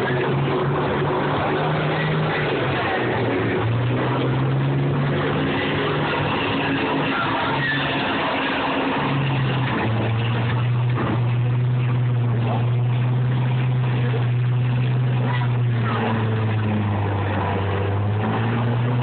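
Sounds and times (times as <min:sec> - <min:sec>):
diesel engines droning: 0:00.0 - 0:19.0.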